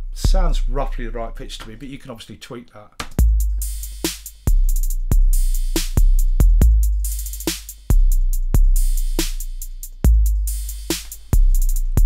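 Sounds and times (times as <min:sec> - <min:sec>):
drum machine kick notes: 0:00.0 - 0:01.7, 0:03.0 - 0:12.0
hi-hat roll: 0:03.2 - 0:12.0
hi-hat ticks: 0:03.2 - 0:12.0.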